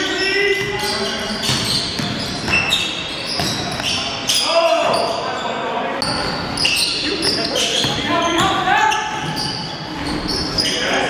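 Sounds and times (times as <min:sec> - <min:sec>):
players calling out: 0:00.0 - 0:11.0
sneakers squeaking: 0:00.0 - 0:11.0
basketball dribbling: 0:00.6 - 0:04.0.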